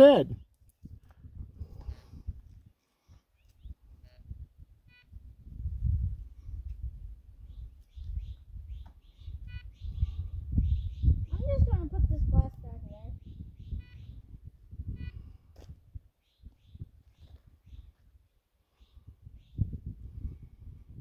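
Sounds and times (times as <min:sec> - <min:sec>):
low rumble on microphone: 0:03.7 - 0:18.2.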